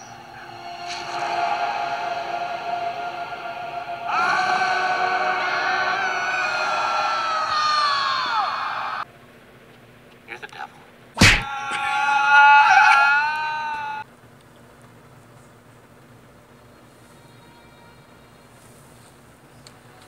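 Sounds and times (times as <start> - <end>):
dramatic orchestral film music: 0.0 - 7.8
long scream dropping in pitch: 0.0 - 9.0, 11.5 - 14.0.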